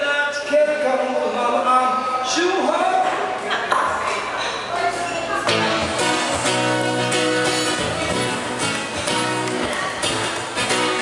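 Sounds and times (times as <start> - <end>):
acoustic guitar: 2.9 - 11.0.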